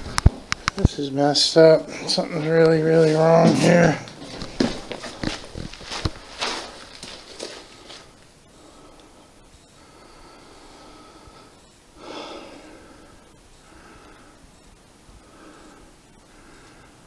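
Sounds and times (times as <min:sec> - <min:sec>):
camera handling rustles and knocks: 0:04.1 - 0:07.6
man breathing out through nose: 0:08.5 - 0:14.6.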